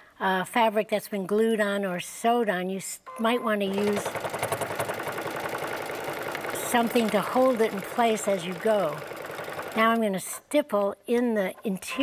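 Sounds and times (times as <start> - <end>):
sewing machine stitching fast: 3.7 - 10.3.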